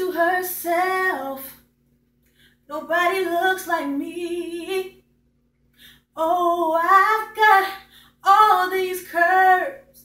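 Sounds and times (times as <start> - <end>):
woman singing a cappella: 0.0 - 1.7, 2.6 - 5.1, 5.9 - 10.0
breath: 2.2 - 2.7, 5.7 - 6.1, 7.8 - 8.2.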